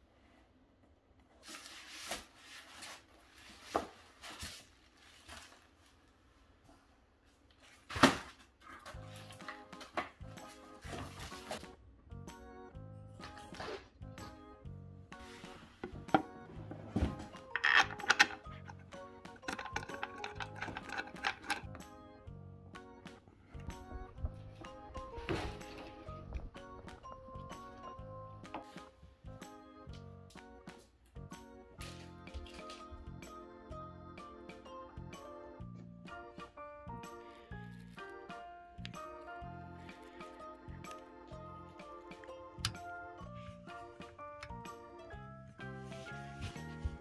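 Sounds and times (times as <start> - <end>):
cardboard packaging rustling: 1.4 - 6.2, 10.5 - 11.7
background music: 8.0 - 47.0
wooden parts knocking and clicking: 17.4 - 21.8.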